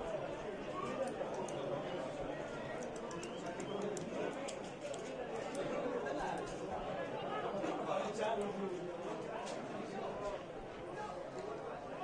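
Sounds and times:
voices and chatter: 0:00.0 - 0:12.0
faint high clicks: 0:02.7 - 0:05.7.

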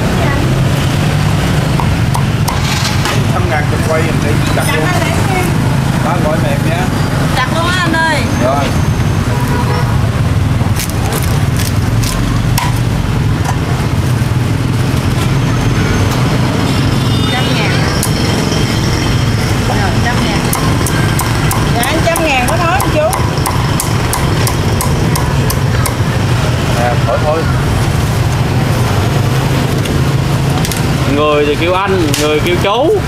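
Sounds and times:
street traffic rumble: 0:00.0 - 0:33.0
cleaver chopping on wooden block: 0:20.5 - 0:26.0.

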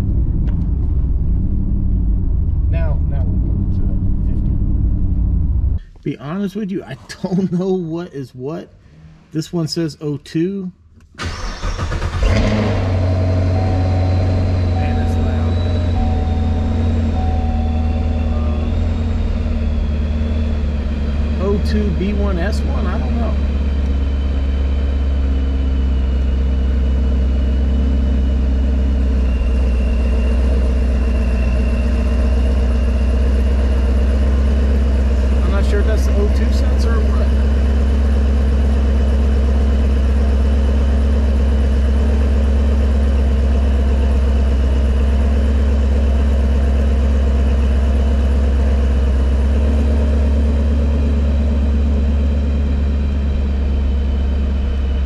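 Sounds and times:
car engine idling: 0:00.0 - 0:09.6, 0:10.4 - 0:55.0.

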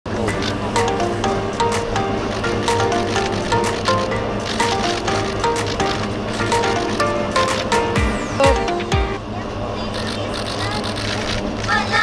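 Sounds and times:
idling vehicle engines and traffic: 0:00.1 - 0:12.0
voices: 0:08.4 - 0:12.0.

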